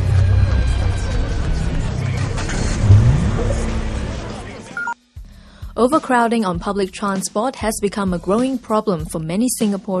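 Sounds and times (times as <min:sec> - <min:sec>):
vehicle motor accelerating: 0:00.7 - 0:04.8.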